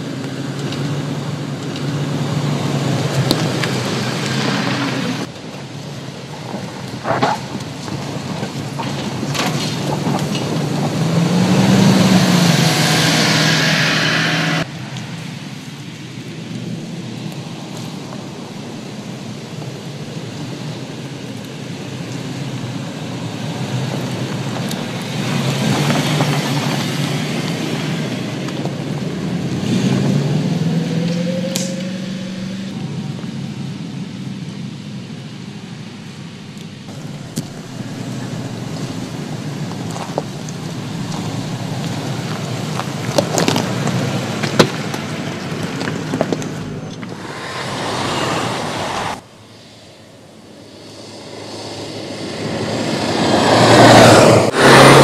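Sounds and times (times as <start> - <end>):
car engine revving: 0.0 - 5.4, 6.3 - 15.0, 22.6 - 33.3, 36.9 - 55.0
tyres on loose ground: 0.0 - 55.0.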